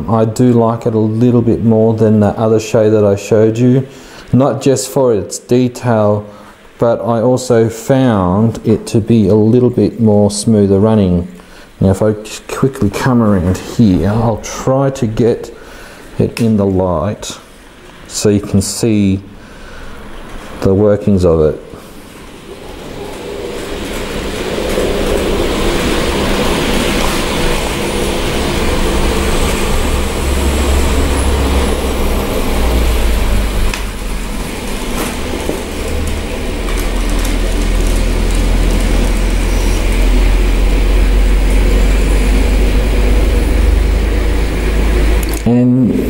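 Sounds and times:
model train rumbling on rails: 19.6 - 46.0.

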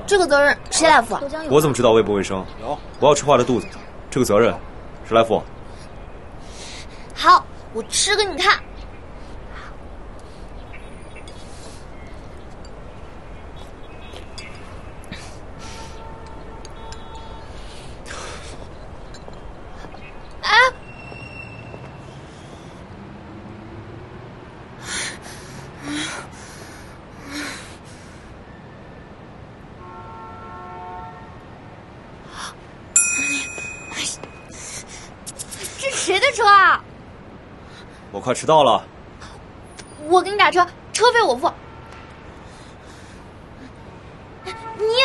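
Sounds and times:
street background noise: 0.0 - 45.0.

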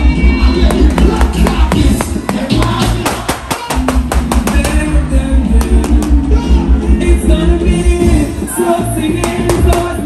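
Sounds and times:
dancehall music over sound system: 0.0 - 10.0.

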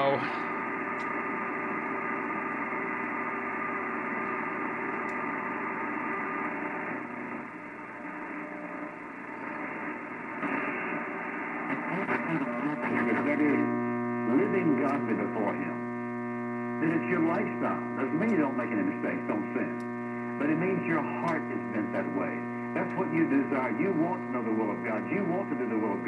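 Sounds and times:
mains hum: 0.0 - 26.0
radio static: 0.0 - 26.0
man preaching over radio: 11.7 - 15.8, 16.8 - 19.8, 20.4 - 26.0.

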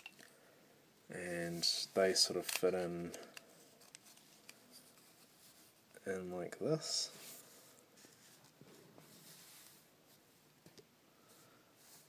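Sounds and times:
plastic parts clicking: 2.4 - 4.6.

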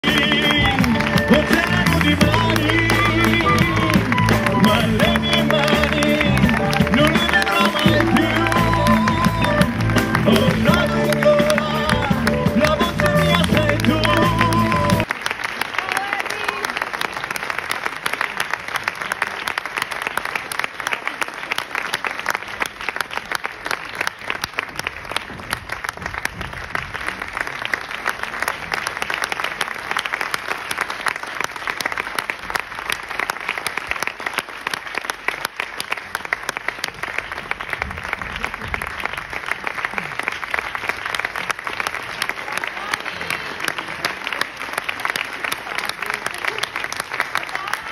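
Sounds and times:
audience applauding: 0.0 - 47.9.

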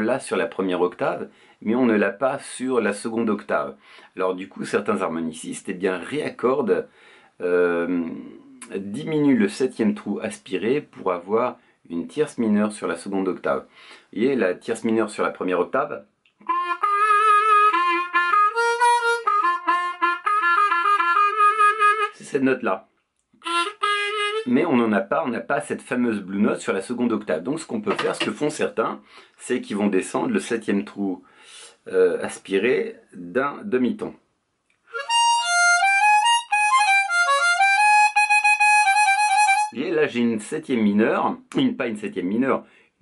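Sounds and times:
bluesy harmonica phrase: 16.4 - 22.3, 23.4 - 24.7, 34.9 - 39.8.

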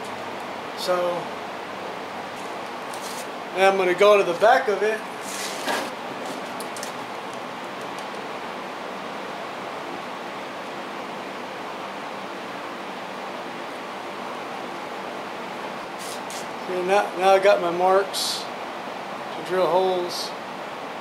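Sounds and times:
steady background hiss: 0.0 - 21.0.

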